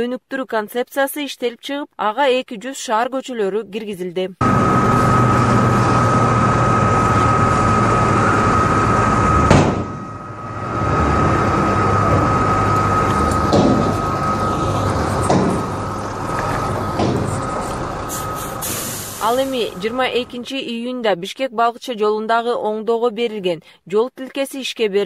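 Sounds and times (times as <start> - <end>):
high whine: 4.4 - 20.5
machine running with low rumble: 4.4 - 20.5
sharp knock: 9.5 - 10.0, 13.5 - 14.0, 15.2 - 15.7, 17.0 - 17.4.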